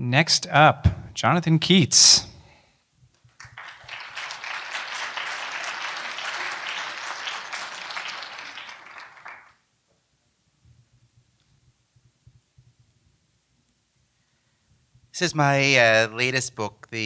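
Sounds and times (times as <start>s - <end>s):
audience applauding: 3.3s - 9.6s.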